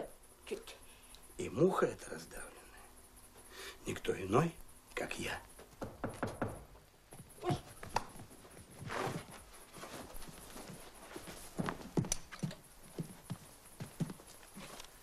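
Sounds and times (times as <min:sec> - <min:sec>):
knocks on wooden boards: 0:05.7 - 0:06.8.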